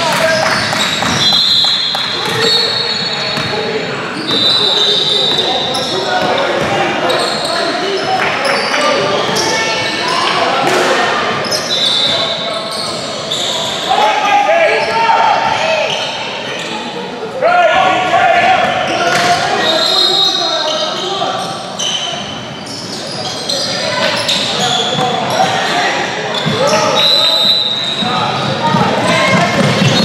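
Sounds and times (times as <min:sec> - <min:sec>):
people shouting in a gym: 0:00.0 - 0:30.0
sneakers squeaking on court: 0:00.2 - 0:10.7, 0:11.3 - 0:13.9, 0:18.8 - 0:30.0.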